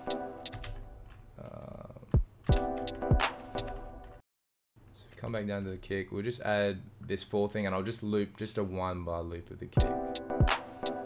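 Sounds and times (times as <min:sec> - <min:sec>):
hip-hop beat: 0:00.0 - 0:00.7, 0:02.2 - 0:04.1, 0:09.8 - 0:11.0.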